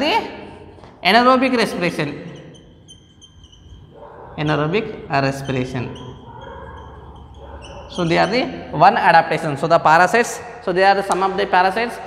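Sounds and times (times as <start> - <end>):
marker squeaking on whiteboard: 1.5 - 8.8.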